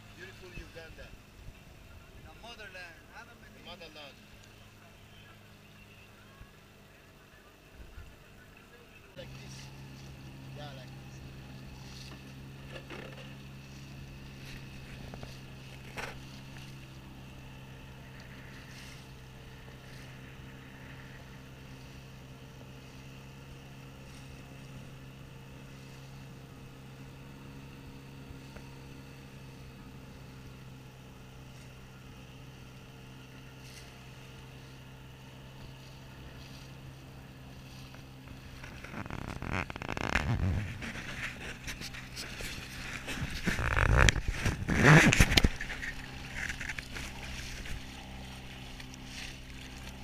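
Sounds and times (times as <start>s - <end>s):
boat motor humming: 0.0s - 50.0s
water splashing along hull: 9.3s - 50.0s.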